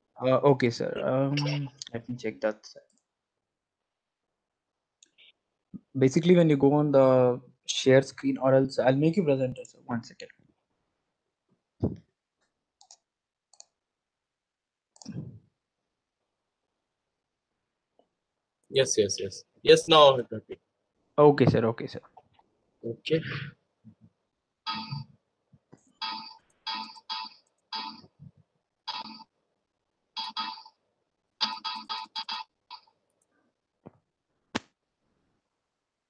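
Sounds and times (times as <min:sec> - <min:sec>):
computer mouse clicks: 0:12.4 - 0:13.8
electronic phone ringtone: 0:24.7 - 0:25.1, 0:26.0 - 0:28.1, 0:28.9 - 0:29.3, 0:30.2 - 0:30.8, 0:31.4 - 0:32.9.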